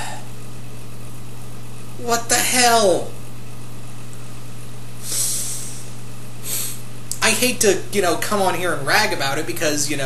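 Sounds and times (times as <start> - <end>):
low electrical hum: 0.0 - 10.0
breathy sighs: 5.0 - 6.8.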